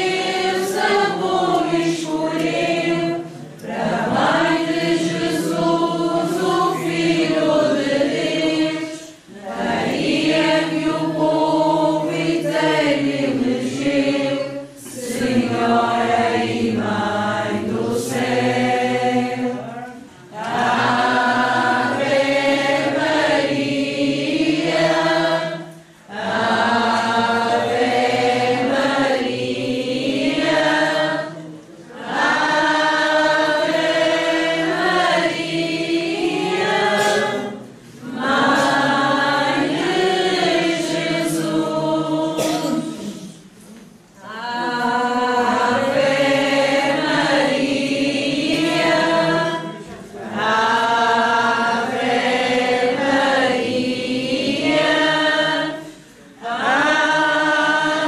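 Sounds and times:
group singing a hymn: 0.0 - 58.0.

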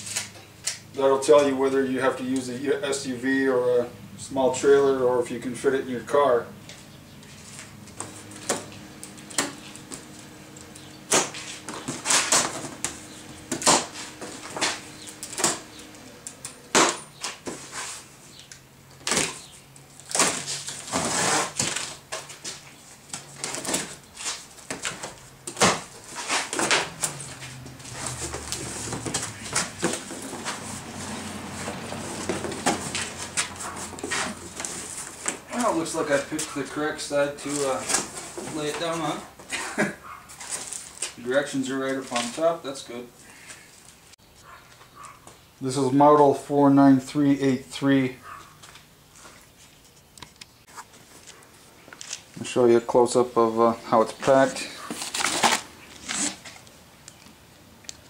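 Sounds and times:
cardboard box being opened: 54.9 - 56.6.

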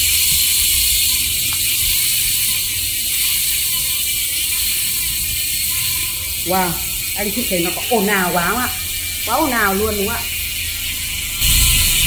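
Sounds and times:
bicycle freehub ratcheting buzz: 0.0 - 12.0.

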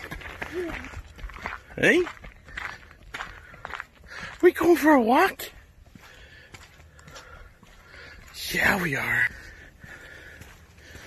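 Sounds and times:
footsteps crunching on dirt: 0.0 - 11.0.

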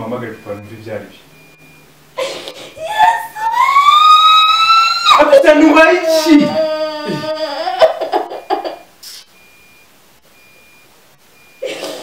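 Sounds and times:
high-pitched electronic beeps: 0.0 - 2.0, 8.3 - 11.7
low hiss: 8.0 - 12.0.

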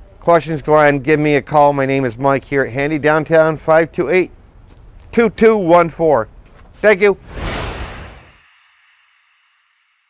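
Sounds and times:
whoosh sound effect: 7.2 - 8.4.

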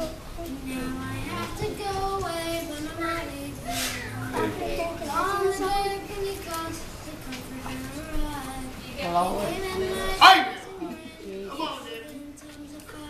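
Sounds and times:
boy singing a gospel song: 0.0 - 13.0.

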